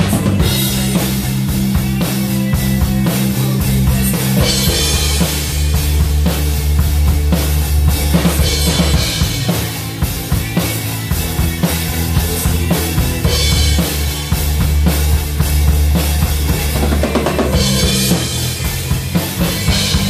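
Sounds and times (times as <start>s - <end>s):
drum kit rock groove: 0.0s - 20.0s
music track with low bass: 0.0s - 20.0s.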